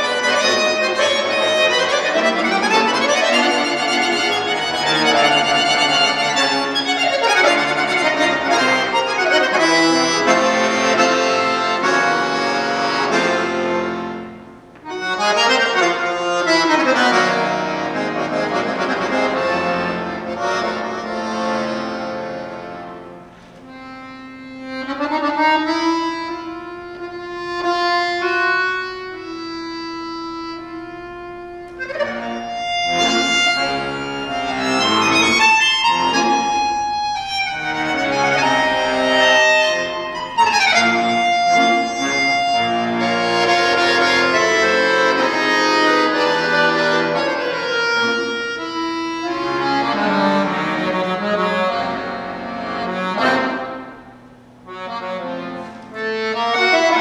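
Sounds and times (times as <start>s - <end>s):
button accordion playing solo: 0.0s - 57.0s.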